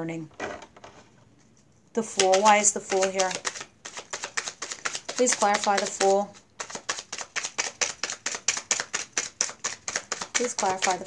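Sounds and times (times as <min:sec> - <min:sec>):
cards being shuffled: 0:00.8 - 0:11.0.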